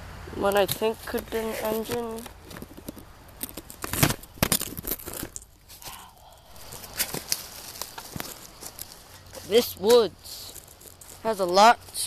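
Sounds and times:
phone handling rustling: 0.8 - 5.5.

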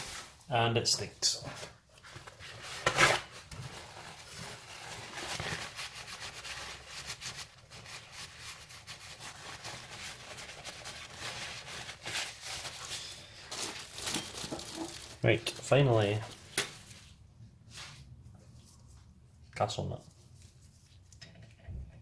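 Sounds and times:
paper towel rubbing: 3.7 - 13.9.

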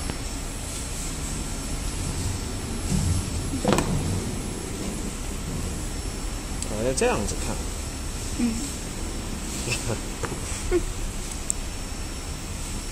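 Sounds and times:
steady low hum: 0.0 - 12.9.

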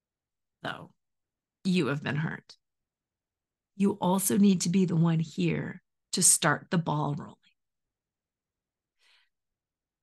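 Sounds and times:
faint breath: 9.0 - 9.4.

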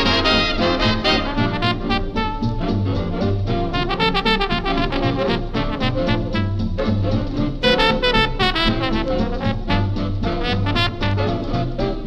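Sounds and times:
big band jazz with brass: 0.0 - 12.0.

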